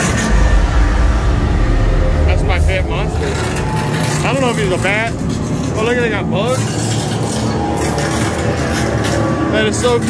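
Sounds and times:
loud low rumble: 0.0 - 6.8.

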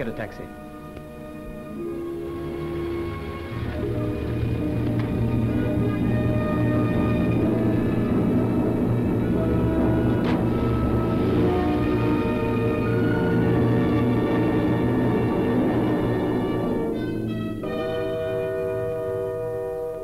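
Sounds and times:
orchestral music with held chords: 0.0 - 20.0.

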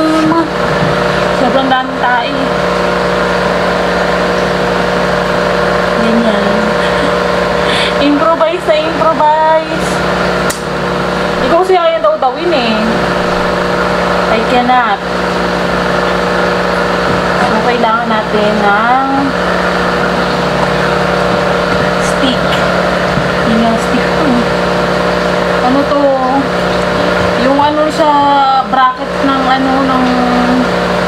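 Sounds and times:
aquarium pump humming and whirring: 0.0 - 31.0.

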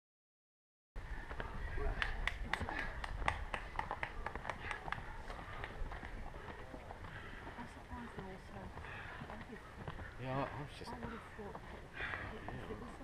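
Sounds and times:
running footsteps on dirt trail: 1.0 - 13.0.

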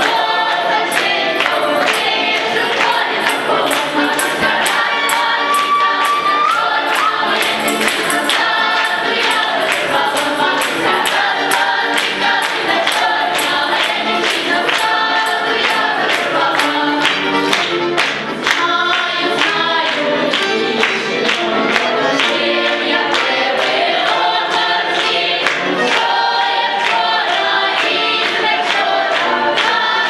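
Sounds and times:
accordion: 0.0 - 30.0
young choir singing folk song: 0.0 - 30.0.

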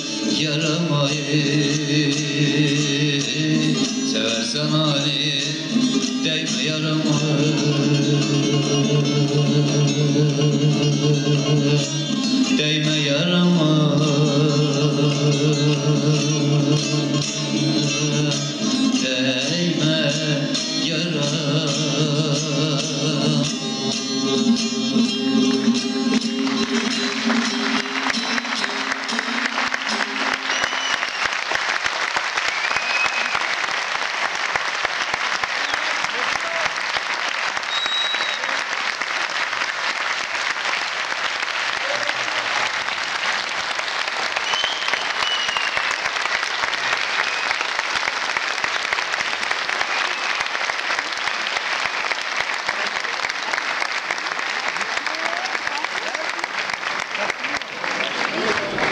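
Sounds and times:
plucked lute notes: 0.0 - 30.5
audience applauding: 25.5 - 58.9
whistles from audience: 30.3 - 31.6, 32.3 - 33.6, 35.6 - 36.0, 37.6 - 38.7, 44.3 - 48.0, 49.9 - 50.6.

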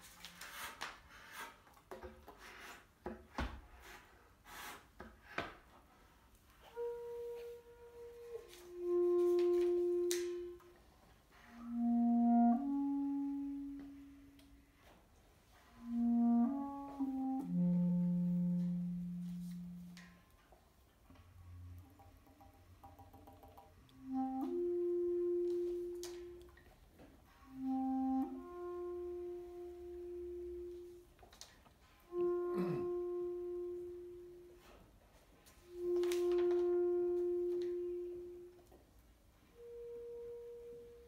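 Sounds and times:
bass clarinet note: 6.6 - 14.9, 15.5 - 20.4, 23.9 - 26.7, 27.3 - 31.1, 31.8 - 34.8, 35.6 - 38.8, 39.5 - 41.0.

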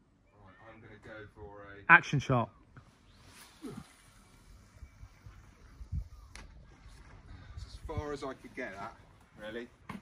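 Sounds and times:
fishing line swishing out: 2.8 - 7.4.

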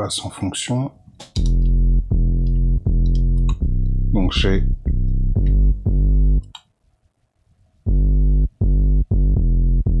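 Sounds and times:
synth bass line: 1.4 - 6.5, 7.9 - 10.0.

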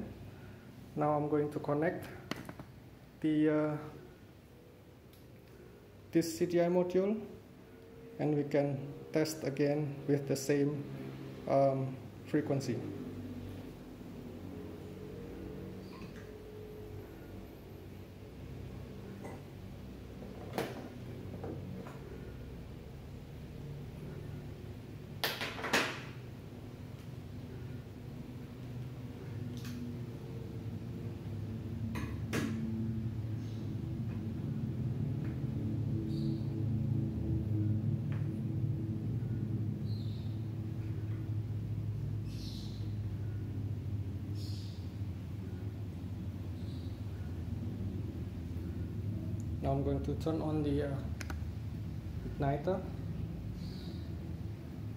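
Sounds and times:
low steady hum: 0.0 - 54.9.

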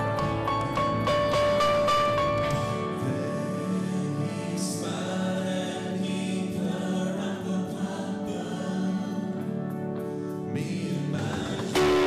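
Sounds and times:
worship band with voices singing: 2.4 - 12.0.

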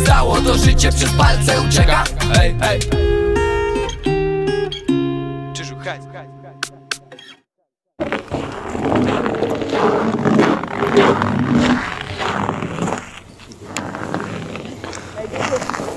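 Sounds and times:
song: 0.0 - 6.3
heavy uneven rumbling noise: 8.0 - 15.9.

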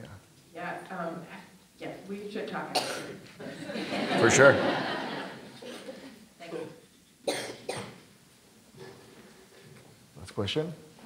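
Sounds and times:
person coughing: 2.7 - 3.2, 6.4 - 8.0.

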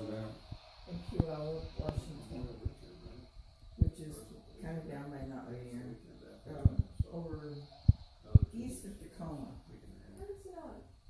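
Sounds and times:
indistinct voices talking: 0.0 - 10.8.

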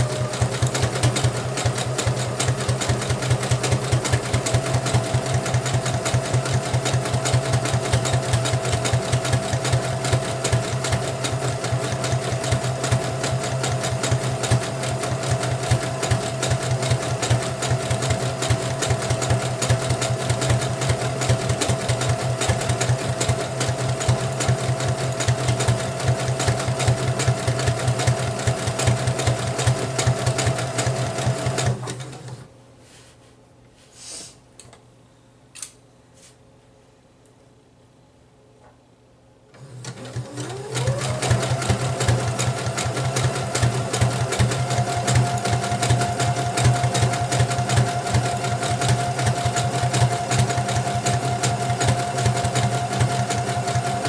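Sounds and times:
sewing machine motor hum: 0.0 - 32.5, 39.5 - 54.0
sewing machine stitching: 0.0 - 32.5, 39.5 - 54.0.

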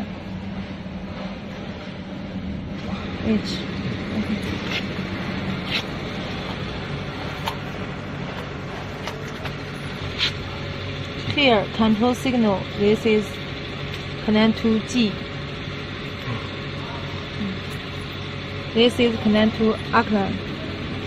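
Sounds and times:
mechanical hum: 0.0 - 21.0.

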